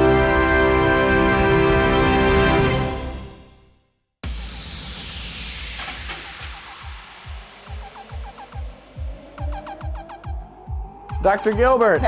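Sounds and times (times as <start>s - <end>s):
noisy whooshing swell: 4.2s - 11.1s
electronic music with kick drum: 4.2s - 12.0s.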